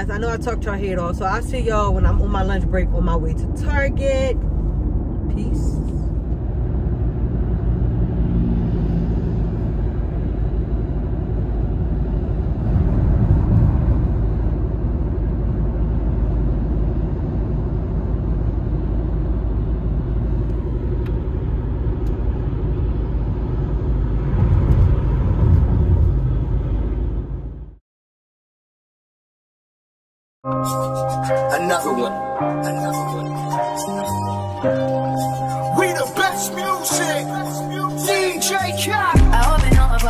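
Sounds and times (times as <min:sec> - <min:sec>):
car cabin road and engine rumble: 0:00.0 - 0:27.8, 0:30.5 - 0:40.0.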